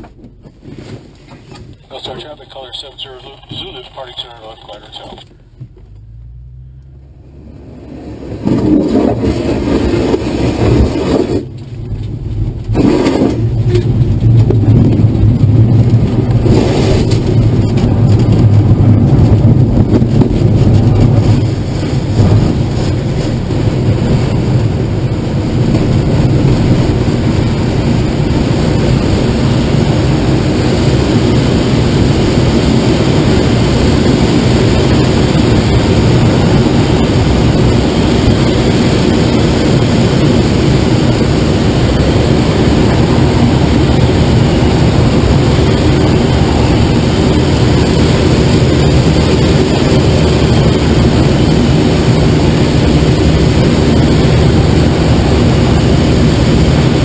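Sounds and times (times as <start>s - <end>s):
plane engine running: 1.6s - 57.0s
rushing air: 7.7s - 57.0s
wheel rumbling over dirt: 8.4s - 27.1s.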